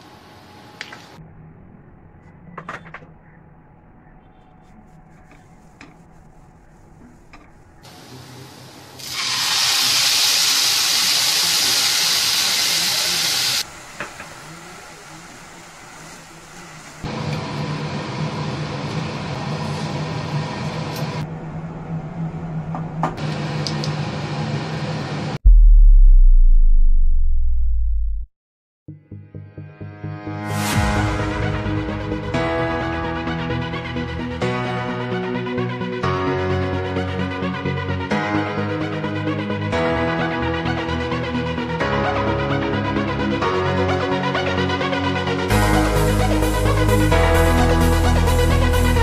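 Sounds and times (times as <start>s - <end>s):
low hum: 1.2s - 7.8s, 21.2s - 23.2s, 25.3s - 28.3s
food frying hiss: 7.9s - 17.1s
loud deep sound: 25.4s - 28.3s.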